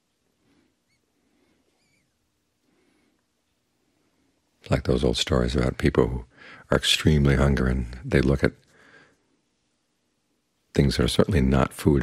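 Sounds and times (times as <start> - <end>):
faint high chirps: 0.6 - 2.3.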